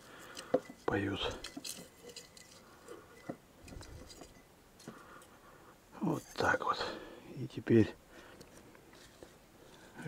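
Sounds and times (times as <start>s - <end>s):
rustling of leaves: 0.0s - 5.3s
light clicks and taps on glass jars: 0.0s - 5.4s.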